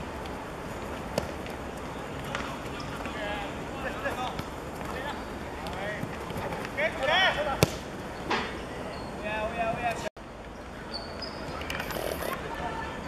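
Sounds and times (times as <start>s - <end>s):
open-air noise: 0.0s - 13.0s
players shouting: 2.1s - 7.9s
ball being kicked: 7.5s - 7.9s.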